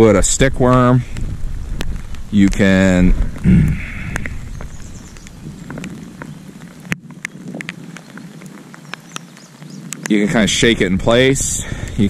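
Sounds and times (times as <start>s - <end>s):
faint hiss of rain: 0.0s - 12.0s
raindrops ticking on camera: 0.0s - 12.0s
man clearing his throat: 3.4s - 4.0s.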